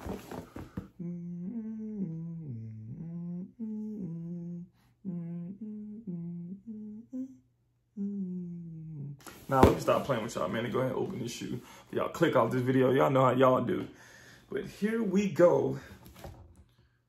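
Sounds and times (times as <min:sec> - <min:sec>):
man humming a tune: 0:00.9 - 0:09.4.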